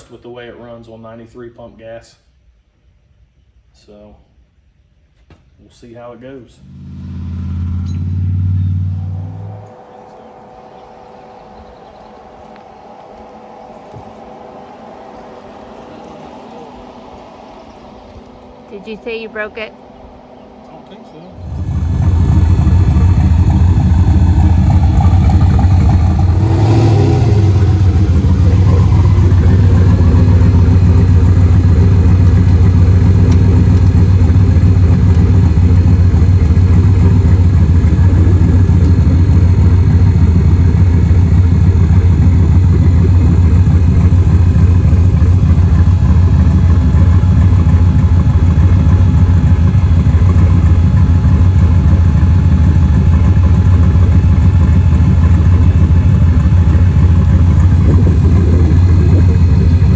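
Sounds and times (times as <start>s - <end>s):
car engine idling: 5.8s - 59.9s.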